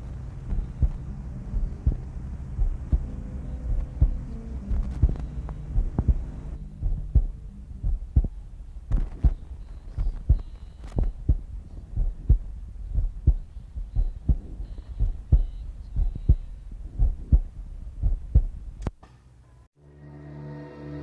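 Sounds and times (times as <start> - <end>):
heartbeat thumps: 0.0 - 18.8
low humming tone: 0.0 - 21.0.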